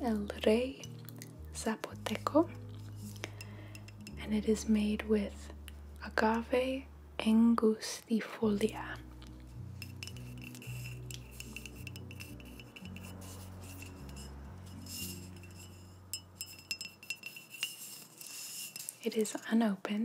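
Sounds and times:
muffled background music: 0.0 - 17.2.

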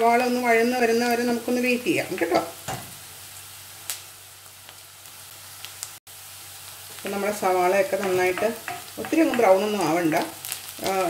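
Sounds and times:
onion sizzling in a pan: 0.0 - 11.0.

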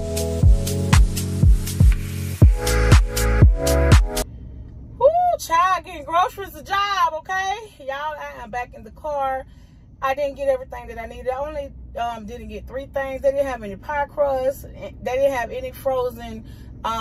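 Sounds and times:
woman talking: 5.0 - 17.0.

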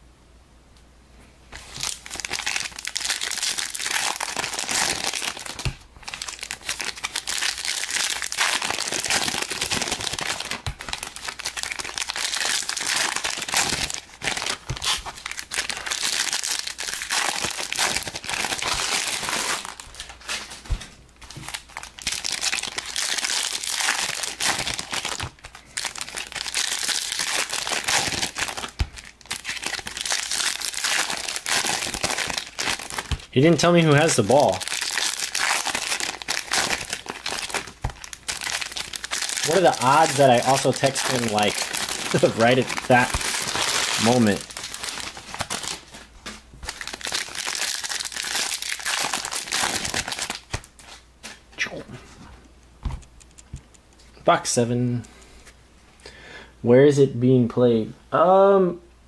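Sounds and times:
foil wrappers crinkling: 1.6 - 51.4.

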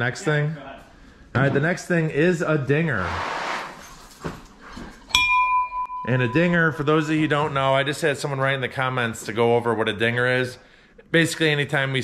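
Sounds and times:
metal bell ringing: 5.1 - 7.1.

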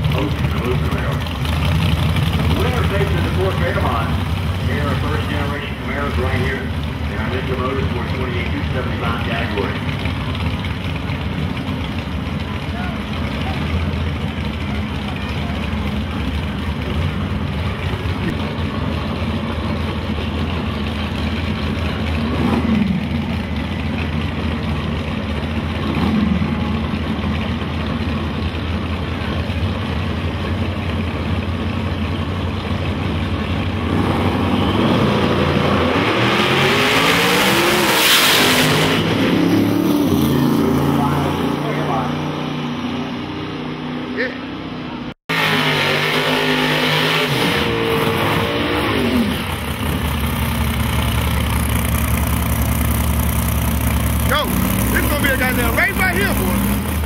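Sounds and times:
race car engines idling: 0.0 - 34.8, 49.2 - 57.0
engine throttle blips: 0.0 - 57.0
cars launching at full throttle: 33.7 - 57.0.

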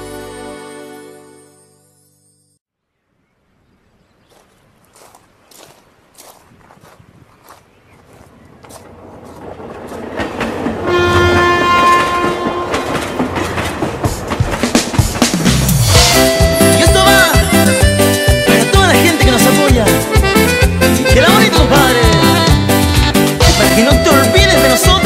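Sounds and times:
train wheels clickety-clack: 8.6 - 15.8
train horn: 10.8 - 13.3
band playing cumbia: 14.1 - 25.0.

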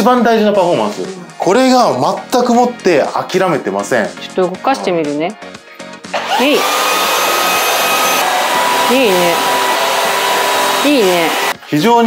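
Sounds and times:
stick vacuum motor whine: 6.2 - 11.6
suction air rush: 6.2 - 11.6.

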